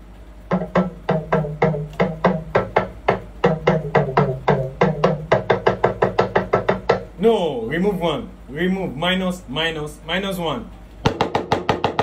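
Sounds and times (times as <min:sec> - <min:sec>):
talking drum struck with stick: 0:00.5 - 0:07.4.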